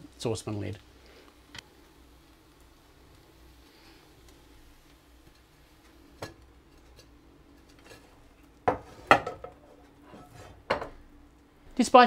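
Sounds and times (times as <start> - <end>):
pan and plate clattering: 8.7 - 11.0.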